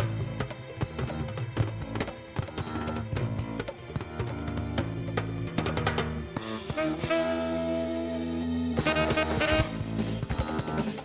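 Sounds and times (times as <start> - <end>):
drum and percussion hits: 0.0 - 7.5, 8.8 - 11.0
electric bass line: 0.0 - 11.0.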